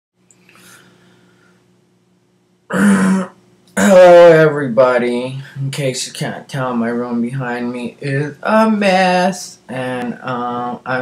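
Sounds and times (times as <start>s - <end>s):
person clearing throat: 2.7s - 4.0s
person talking: 3.7s - 11.0s.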